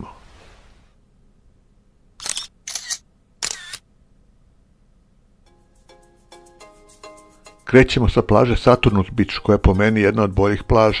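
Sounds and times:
camera shutter sound effects: 2.2 - 3.8.

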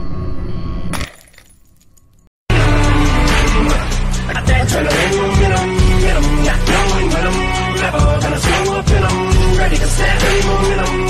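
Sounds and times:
glass shattering: 0.9 - 2.3
dark droning music: 2.5 - 11.0.

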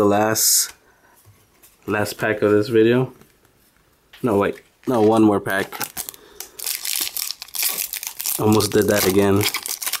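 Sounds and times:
foil wrapper crinkling: 4.9 - 10.0.

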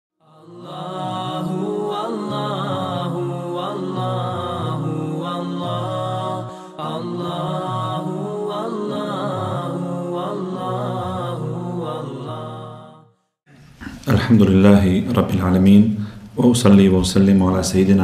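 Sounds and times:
layered chanting voices: 0.2 - 13.1.

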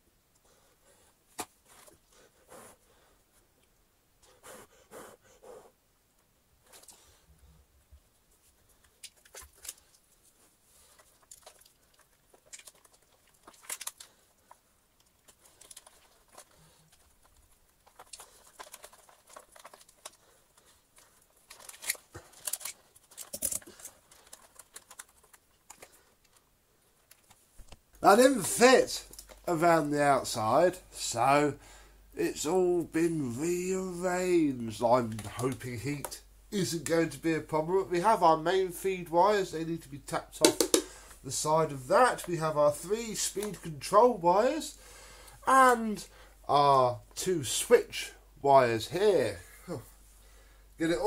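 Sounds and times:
clicks and taps of hands on parts: 40.4 - 40.9.

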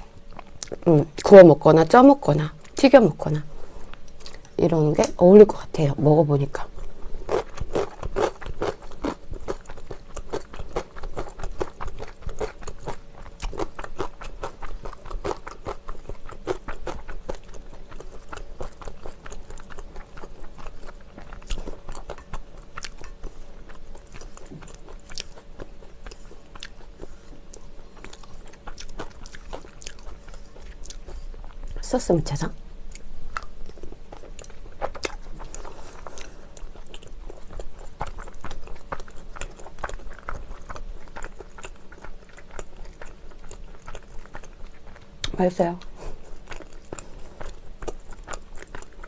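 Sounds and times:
wet chewing and smacking: 0.0 - 1.4, 3.8 - 4.6, 6.7 - 31.8, 32.9 - 49.0
faint steady hum: 0.0 - 49.0.

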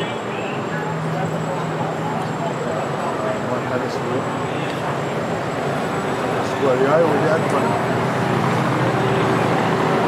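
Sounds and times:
engine and traffic rumble: 0.0 - 10.0.

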